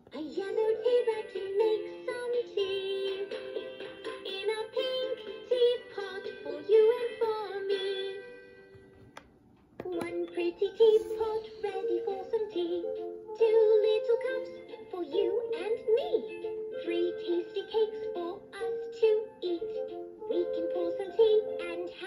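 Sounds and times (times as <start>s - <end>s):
toy playing children's song: 0.1s - 8.7s, 9.8s - 22.0s.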